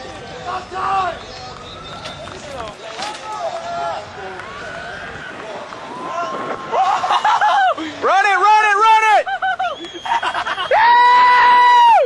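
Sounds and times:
voices shouting: 0.0 - 12.0.

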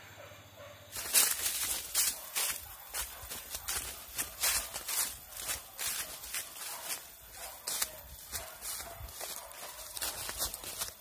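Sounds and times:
footsteps through undergrowth: 0.9 - 11.0.

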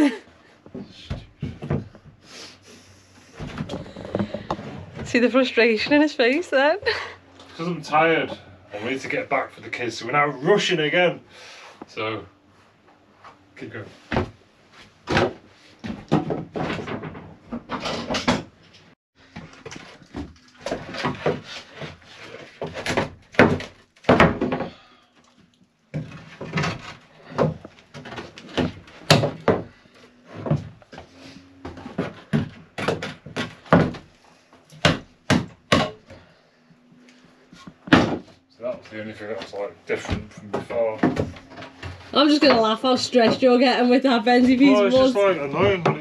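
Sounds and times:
wooden knocks and thuds: 0.6 - 2.2, 3.4 - 5.2, 15.0 - 18.5, 22.5 - 24.8, 25.9 - 34.2, 34.8 - 36.2, 37.6 - 38.9, 39.5 - 43.7, 44.3 - 46.0.

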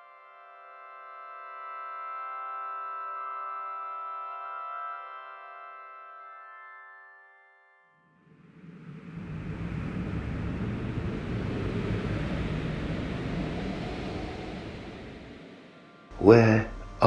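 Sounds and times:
low rumbling noise: 8.3 - 17.0.

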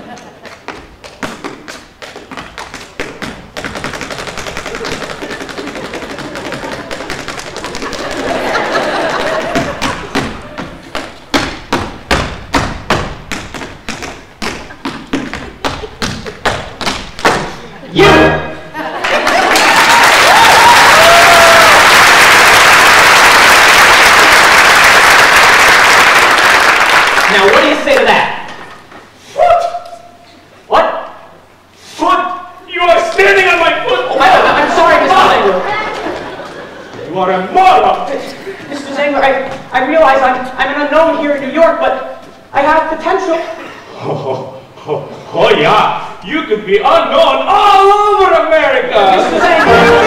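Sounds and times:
rhythmic thuds on wooden stage: 0.0 - 18.4, 38.6 - 40.8
audience applause: 4.5 - 10.2, 19.0 - 27.7, 49.2 - 50.0
orchestra held chord: 18.0 - 18.7, 49.4 - 50.0
voices talking in a large hall: 27.2 - 50.0.

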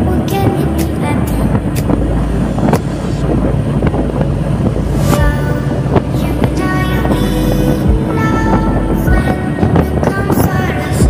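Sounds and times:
motorcycle engine rumble: 0.0 - 11.0
wind on microphone: 0.0 - 11.0.

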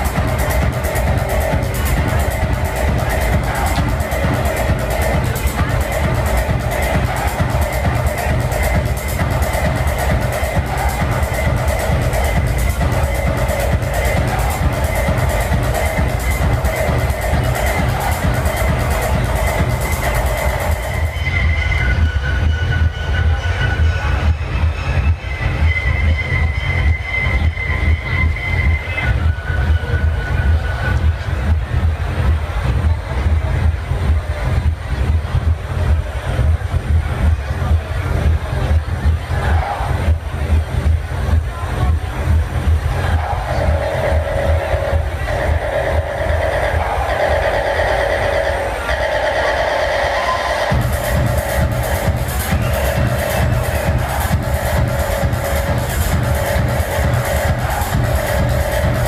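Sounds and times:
techno heavy bass beat: 0.0 - 59.0.

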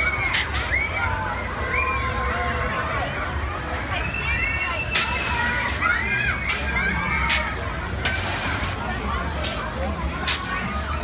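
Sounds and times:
crowd voices: 0.0 - 11.0
ride machinery humming: 0.0 - 11.0.

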